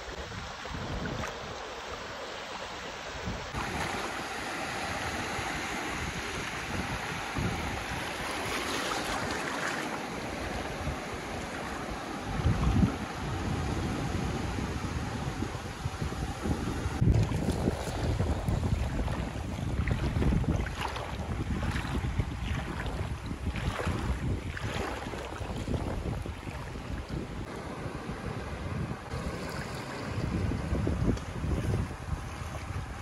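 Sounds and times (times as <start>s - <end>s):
wind rumbling on microphone: 0.0s - 1.7s, 3.1s - 33.0s
small waves splashing: 0.0s - 33.0s.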